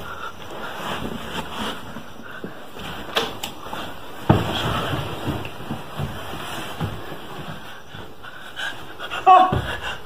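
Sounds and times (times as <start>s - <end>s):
person panting: 8.1s - 10.0s.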